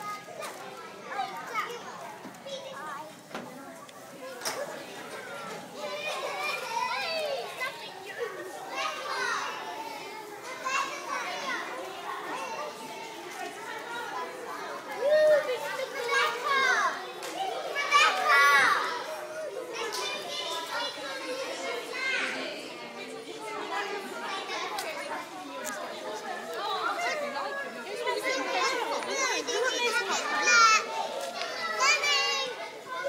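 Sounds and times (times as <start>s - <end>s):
adults talking: 0.0s - 33.0s
children's voices chattering: 0.0s - 33.0s.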